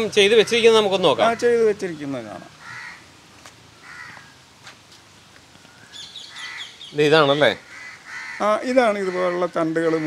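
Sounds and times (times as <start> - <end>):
faint bird calls: 0.0 - 3.1, 3.8 - 4.5, 5.6 - 10.0.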